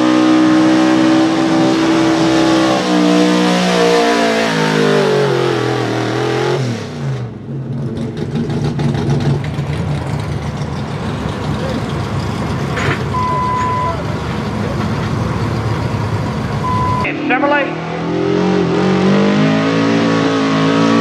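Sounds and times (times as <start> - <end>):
truck engine at full throttle: 0.0 - 21.0.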